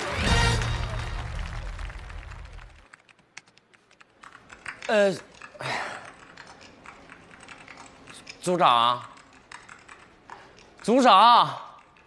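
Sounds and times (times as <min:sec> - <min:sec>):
background music: 0:00.0 - 0:02.6
laptop keyboard clicks: 0:02.9 - 0:08.4, 0:09.1 - 0:10.9.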